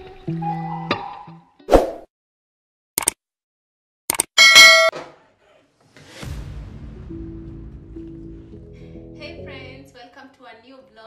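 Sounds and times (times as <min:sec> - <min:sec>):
bright bell ding: 0:04.4 - 0:04.9.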